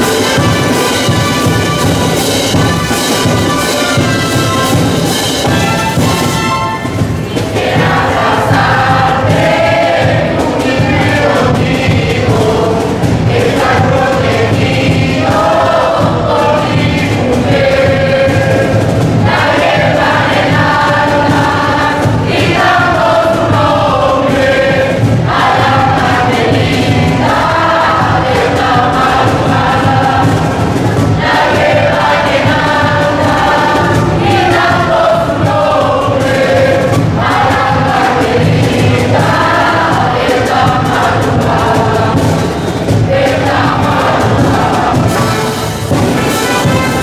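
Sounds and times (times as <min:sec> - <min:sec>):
choir singing a religious song: 0:00.0 - 0:47.0
instrumental accompaniment: 0:00.0 - 0:47.0.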